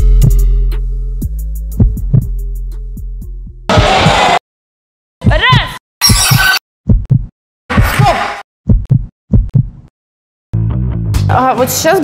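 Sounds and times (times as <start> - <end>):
low heartbeat-like thumps: 0.0 - 0.6, 1.2 - 4.0, 6.9 - 7.9, 8.7 - 9.9.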